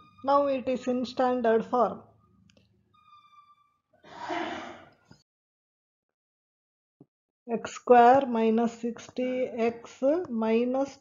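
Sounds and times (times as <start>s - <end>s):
person exhaling into microphone: 4.1s - 4.9s.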